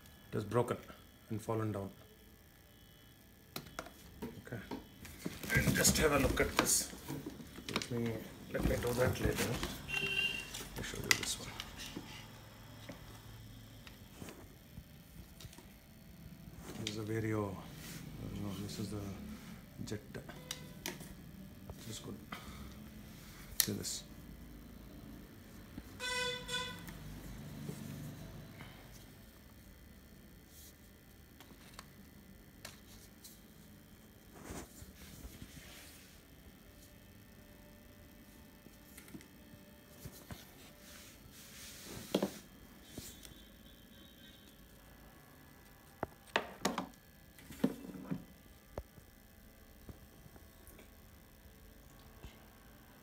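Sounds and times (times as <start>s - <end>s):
low steady hum: 0.0s - 53.0s.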